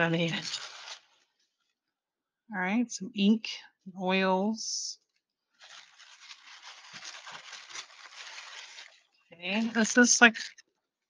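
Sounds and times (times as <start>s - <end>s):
paper rustling and crinkling: 0.0s - 1.4s, 5.5s - 10.6s.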